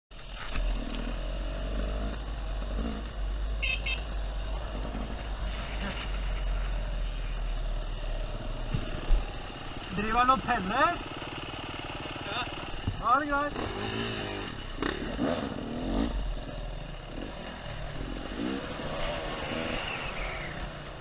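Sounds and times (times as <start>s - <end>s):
motorcycle engine running: 0.1s - 21.0s.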